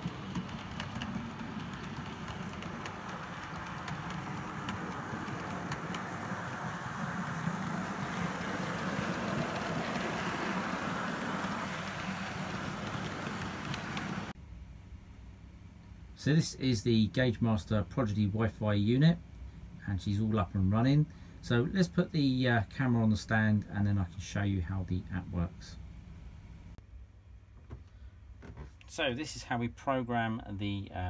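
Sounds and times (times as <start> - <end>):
clicks at rail joints: 0.0 - 14.3
model train motor whirring: 0.0 - 14.3.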